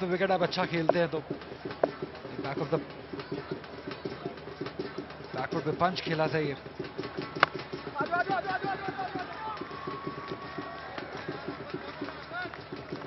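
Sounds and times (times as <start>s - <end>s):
stadium background noise: 0.0s - 13.0s.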